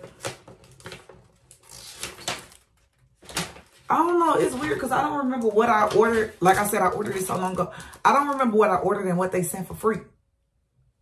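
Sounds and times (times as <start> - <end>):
paper sheets rustling: 0.0 - 8.6.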